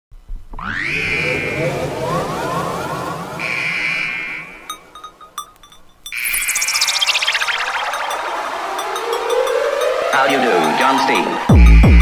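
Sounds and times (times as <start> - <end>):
synth sweeping up in pitch: 0.6 - 5.2, 6.2 - 12.0
high synth tone: 0.7 - 12.0
dense electronic texture: 0.8 - 12.0.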